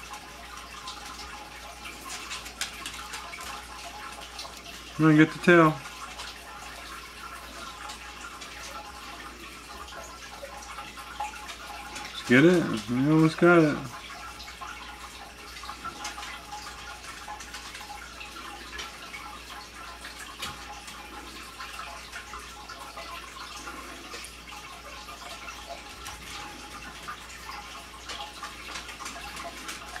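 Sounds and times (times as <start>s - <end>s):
small irregular ticks: 0.0s - 4.9s
water trickling and dripping: 0.0s - 30.0s.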